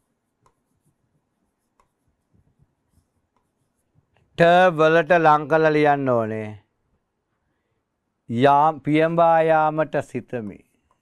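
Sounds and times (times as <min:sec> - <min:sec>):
stylus tapping and scratching: 0:00.0 - 0:04.4.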